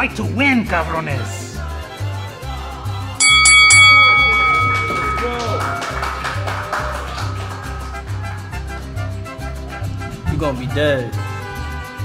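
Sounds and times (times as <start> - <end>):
boxing ring bell: 3.2 - 7.5.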